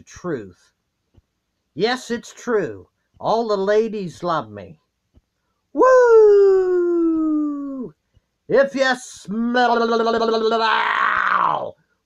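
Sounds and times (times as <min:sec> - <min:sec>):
man howling: 0:05.8 - 0:07.9, 0:10.2 - 0:11.7.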